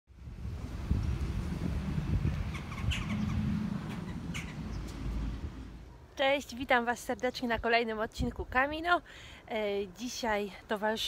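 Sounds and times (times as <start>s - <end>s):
low rumble on microphone: 0.1s - 5.9s
bird chirps: 2.5s - 5.0s.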